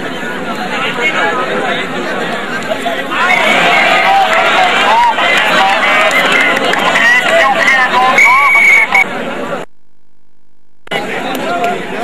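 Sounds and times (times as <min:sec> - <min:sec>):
crowd chattering and shouting: 0:00.0 - 0:09.7, 0:10.9 - 0:12.0.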